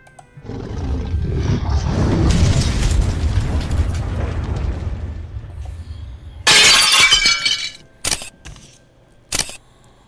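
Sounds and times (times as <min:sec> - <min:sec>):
music: 0:00.0 - 0:01.0
deep cinematic rumble: 0:00.8 - 0:06.5.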